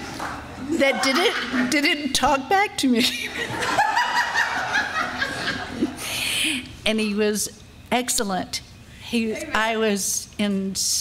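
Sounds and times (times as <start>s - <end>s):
crowd laughing: 0.7s - 1.8s, 3.2s - 6.0s.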